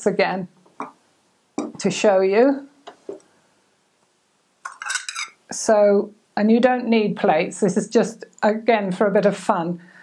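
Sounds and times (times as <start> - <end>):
china plate and bowl clinking: 4.6 - 5.4
dishes rattling: 4.6 - 5.4.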